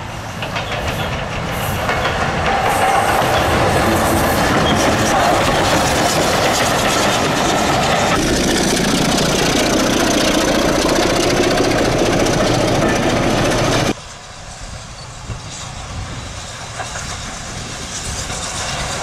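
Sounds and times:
train wheels clattering over rail joints: 0:00.0 - 0:14.0
diesel locomotive engine running: 0:00.0 - 0:19.0.

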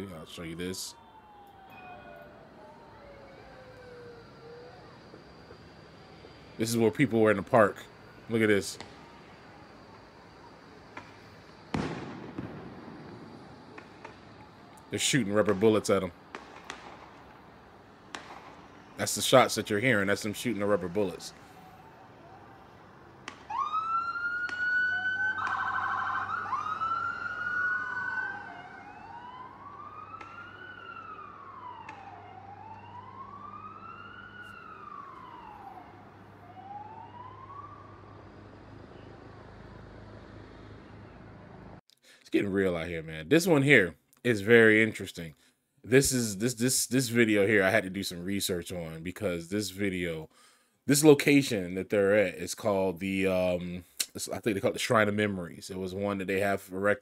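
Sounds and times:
police siren wailing: 0:00.0 - 0:41.8
gunshot with long echo: 0:11.7 - 0:14.2.

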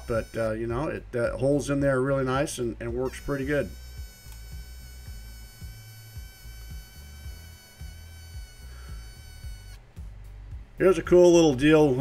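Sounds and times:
welding arc buzzing: 0:00.0 - 0:10.4.

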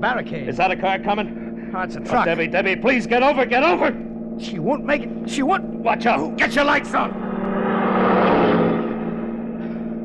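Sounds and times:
car engine drone: 0:00.0 - 0:10.0
truck passing by: 0:06.2 - 0:09.9.

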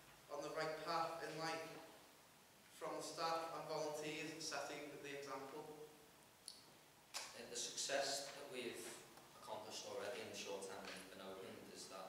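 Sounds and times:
young man speaking: 0:00.3 - 0:02.0, 0:02.8 - 0:05.8, 0:07.2 - 0:12.0.

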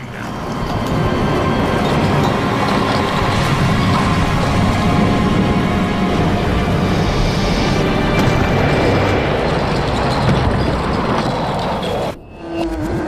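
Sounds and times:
music: 0:00.0 - 0:13.0
stone masonry crumbling: 0:08.1 - 0:12.1.

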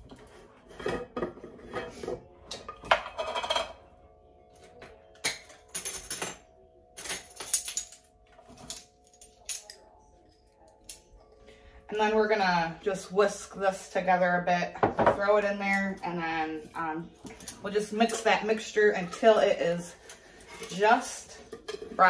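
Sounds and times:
metal utensils clinking on glass: 0:00.8 - 0:03.9, 0:04.6 - 0:10.0, 0:17.2 - 0:22.0.

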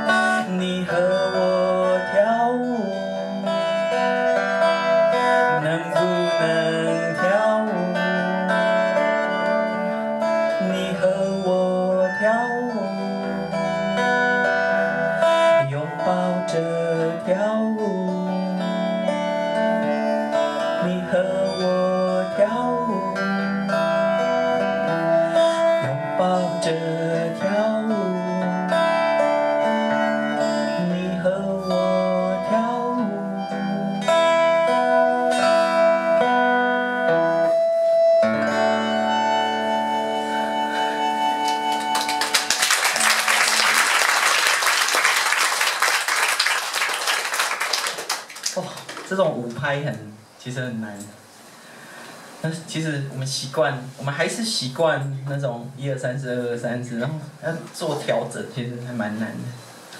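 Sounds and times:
strummed acoustic guitar: 0:00.0 - 0:45.5
applause: 0:41.4 - 0:49.2.

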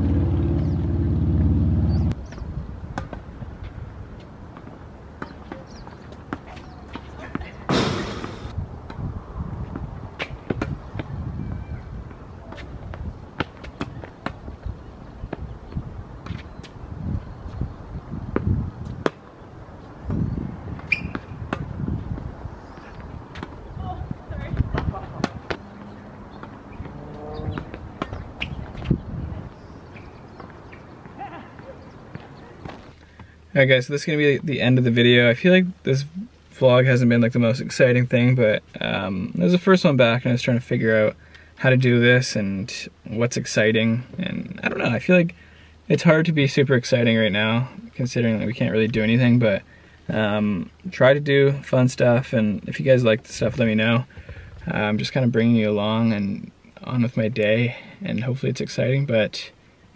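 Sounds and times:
loud low steady hum: 0:00.0 - 0:02.2
low outdoor rumble: 0:00.0 - 0:02.8
racket striking tennis ball: 0:07.7 - 0:09.0, 0:24.8 - 0:25.6
tennis ball bouncing: 0:23.3 - 0:23.7, 0:24.6 - 0:28.9.

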